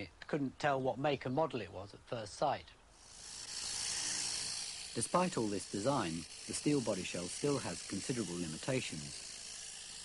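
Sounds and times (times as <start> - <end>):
steady high hiss: 1.7 - 10.0.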